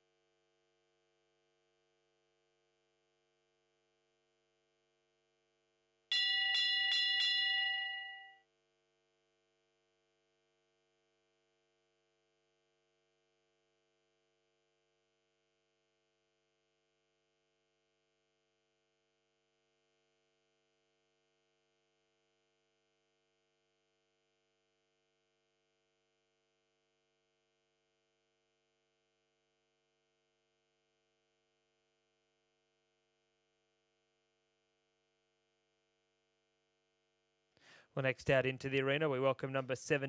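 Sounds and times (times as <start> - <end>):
bell ringing: 6.1 - 8.4.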